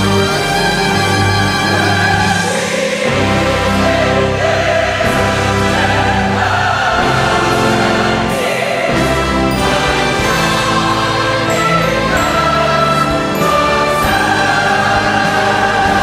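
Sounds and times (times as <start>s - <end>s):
choir singing with orchestra: 0.0s - 16.0s.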